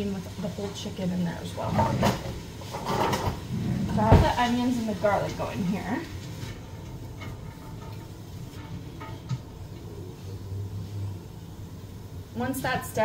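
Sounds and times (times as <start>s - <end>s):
low steady hum: 0.0s - 13.0s
onions sauteing in a pot: 0.0s - 13.0s
utensil scraping and knocking pot: 1.5s - 11.5s.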